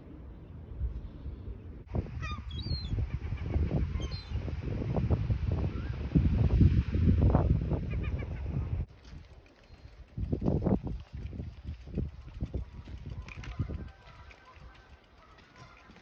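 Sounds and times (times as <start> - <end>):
wind buffeting microphone: 0.0 - 16.0
waterbird calls: 2.2 - 4.4, 13.2 - 16.0.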